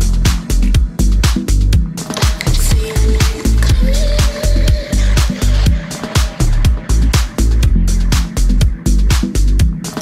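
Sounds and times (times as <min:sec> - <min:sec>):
kick drum: 0:00.0 - 0:09.9
hi-hats: 0:00.0 - 0:10.0
house music: 0:00.0 - 0:10.0.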